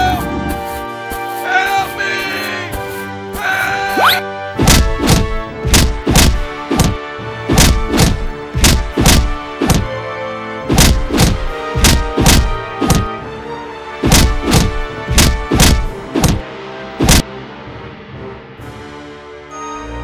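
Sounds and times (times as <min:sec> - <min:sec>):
background music: 0:00.0 - 0:20.0
heavy cartoon impact thuds: 0:04.6 - 0:09.9, 0:10.7 - 0:13.1, 0:14.0 - 0:16.4, 0:17.0 - 0:17.2.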